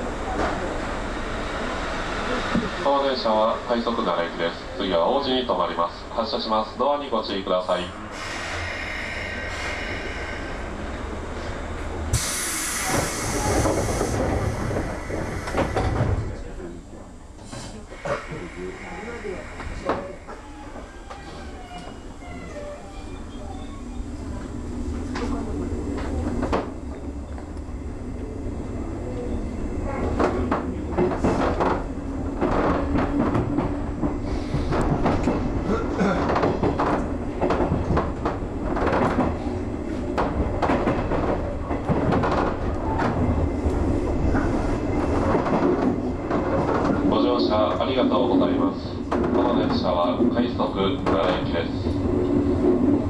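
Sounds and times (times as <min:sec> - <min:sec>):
electric train rumble and hum: 0:00.0 - 0:53.0.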